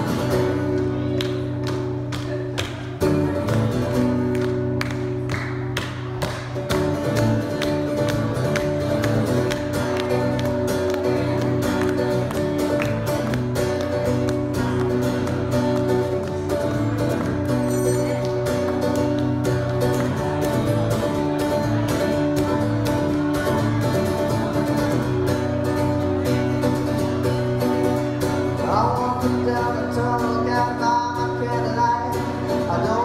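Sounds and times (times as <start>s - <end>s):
acoustic guitar strummed: 0.0s - 33.0s.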